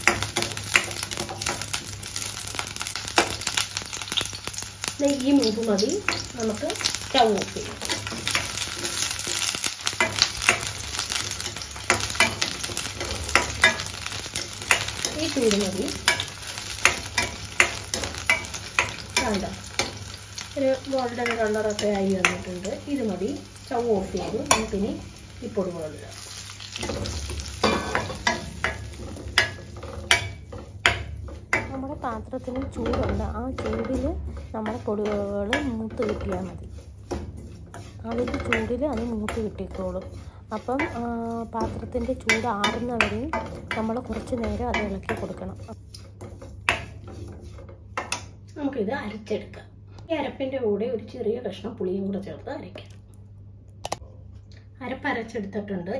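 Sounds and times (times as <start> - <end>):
spatula scraping pan: 0.0 - 48.4
oil sizzling: 0.0 - 48.6
woman talking: 5.0 - 7.8, 15.1 - 16.1, 19.2 - 19.6, 20.6 - 26.2, 31.7 - 36.6, 38.0 - 45.8, 48.6 - 52.9, 54.8 - 55.9.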